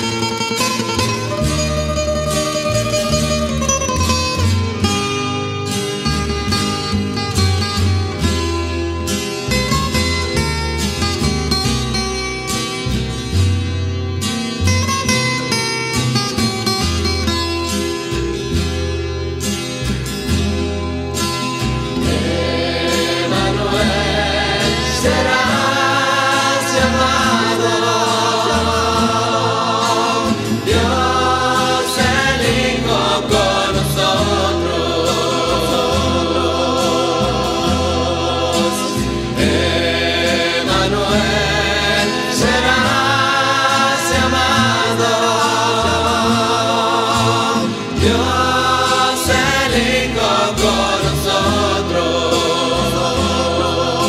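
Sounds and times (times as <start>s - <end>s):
plucked strings: 0.0s - 54.0s
choir singing with vibrato: 21.8s - 54.0s.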